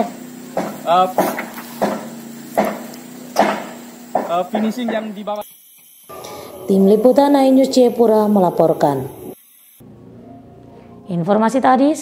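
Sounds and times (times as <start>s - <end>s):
hammer blows on metal roofing: 0.0s - 5.1s.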